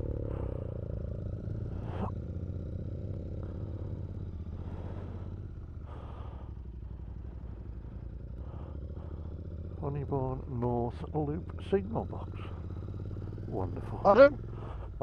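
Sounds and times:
motorcycle engine at low revs: 0.0s - 15.0s.

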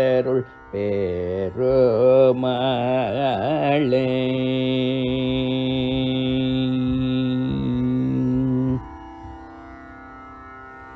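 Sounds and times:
person singing a long note: 0.0s - 9.4s
tanpura drone: 0.0s - 10.9s.

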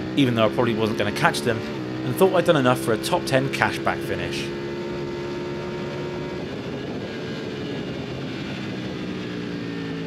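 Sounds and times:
motorcycle engine at high revs: 0.0s - 10.0s.

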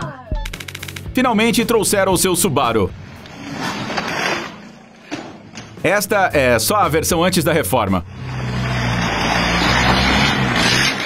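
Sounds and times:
car engine rushing: 8.1s - 11.0s
tyres on dirt: 8.2s - 11.0s.

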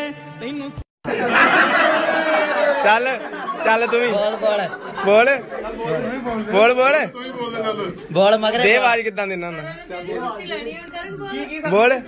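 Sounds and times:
background chatter: 1.6s - 12.0s.

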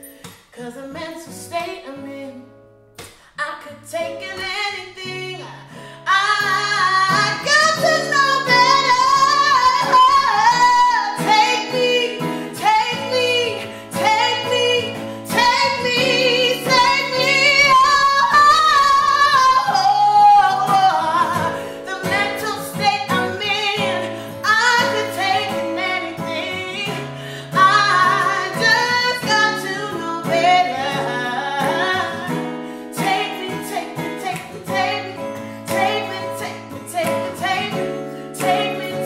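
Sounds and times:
woman singing: 0.0s - 2.6s, 3.3s - 39.0s
strummed acoustic guitar: 0.0s - 39.0s.

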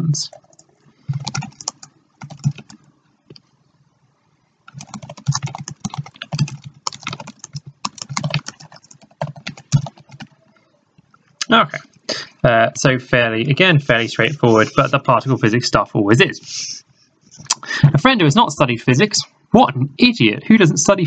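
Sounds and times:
computer keyboard typing: 0.3s - 3.5s, 4.7s - 10.6s.

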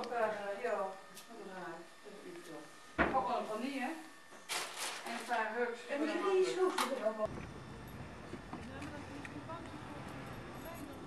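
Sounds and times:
outdoor background noise: 6.4s - 11.0s.

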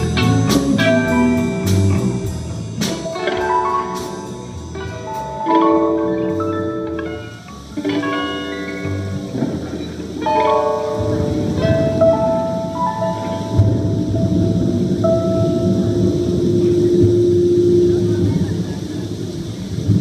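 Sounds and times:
electric piano slow notes: 0.0s - 20.0s
thunder and rain: 11.1s - 20.0s.

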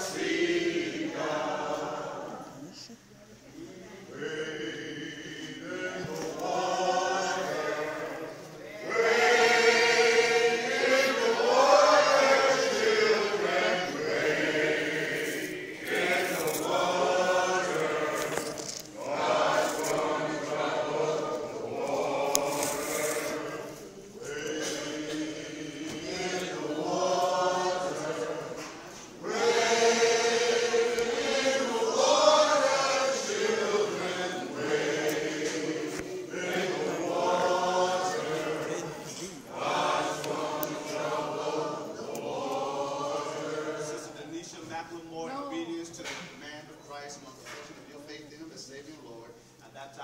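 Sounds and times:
congregation singing: 0.0s - 50.0s.

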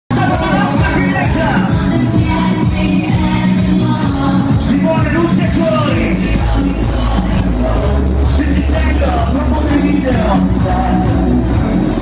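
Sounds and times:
loud dance music with bass: 0.1s - 12.0s.

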